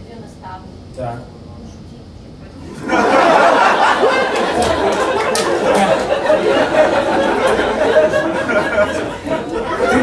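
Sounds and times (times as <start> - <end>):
audience laughing and talking: 2.6 - 10.0
scattered handclaps: 4.3 - 6.0, 7.4 - 7.7.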